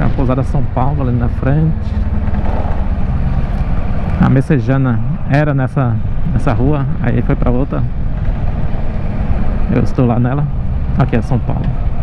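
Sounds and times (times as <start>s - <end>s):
motorcycle engine running: 0.0s - 12.0s
wind and road noise: 0.0s - 12.0s.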